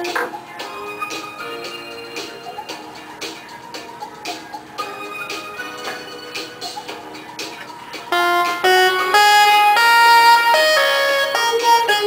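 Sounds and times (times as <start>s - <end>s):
keyboard synth through talkbox: 0.0s - 12.0s
quieter background music: 0.0s - 12.0s.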